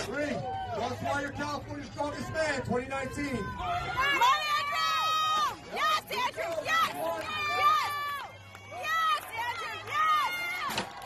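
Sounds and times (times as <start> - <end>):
people shouting and yelling: 0.0 - 11.0.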